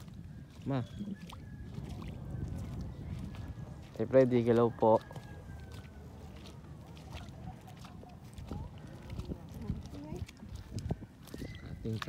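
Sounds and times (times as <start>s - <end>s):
footsteps on wet mud: 0.0s - 12.0s.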